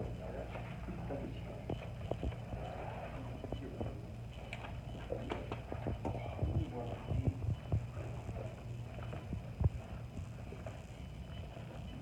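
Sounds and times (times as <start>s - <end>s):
quiet voices: 0.0s - 9.8s
low room hum: 0.0s - 12.0s
footsteps: 5.0s - 10.8s.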